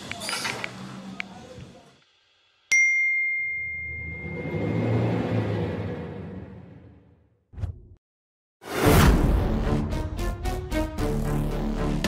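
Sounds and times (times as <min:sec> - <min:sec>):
bright ding: 0:02.7 - 0:04.7.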